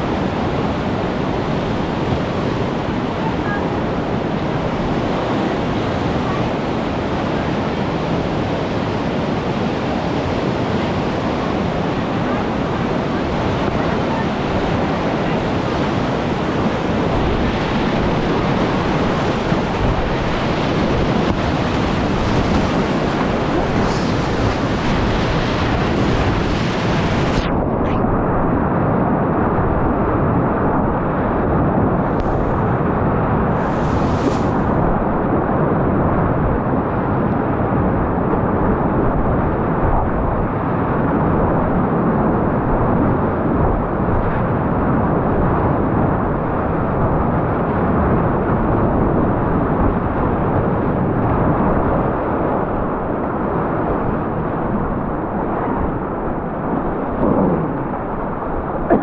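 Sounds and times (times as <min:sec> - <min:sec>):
whitewater rushing and splashing: 0:00.0 - 0:27.6, 0:32.2 - 0:35.3.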